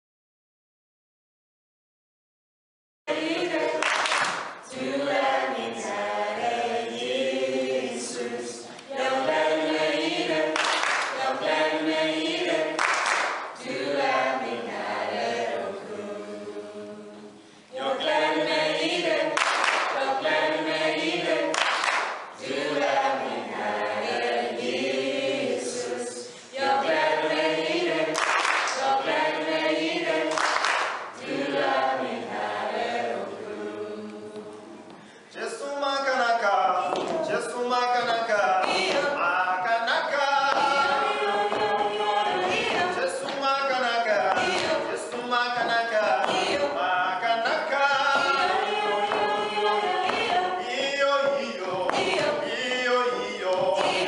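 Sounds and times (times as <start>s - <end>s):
mixed choir singing a cappella: 3.1s - 54.0s.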